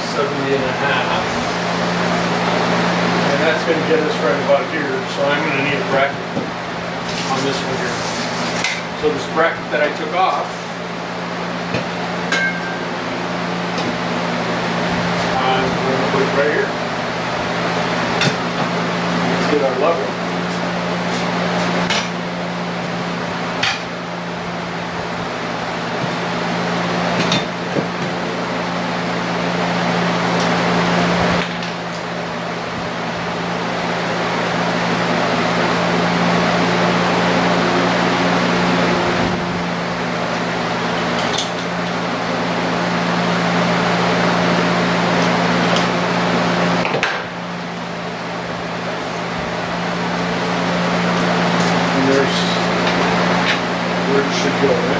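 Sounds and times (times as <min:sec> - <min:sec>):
machine hum: 0:00.0 - 0:54.9.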